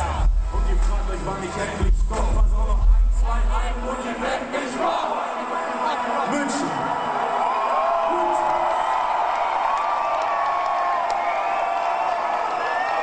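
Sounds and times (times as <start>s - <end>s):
concert crowd cheering: 0.0s - 13.0s
whoops and shouts: 6.7s - 13.0s.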